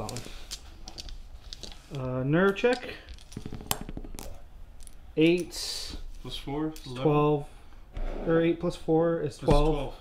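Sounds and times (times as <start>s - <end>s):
dice rattling and clattering: 0.0s - 5.0s.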